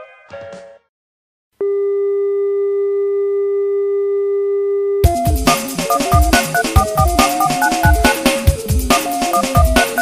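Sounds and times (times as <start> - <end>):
steady electronic tone: 4.7 - 8.5.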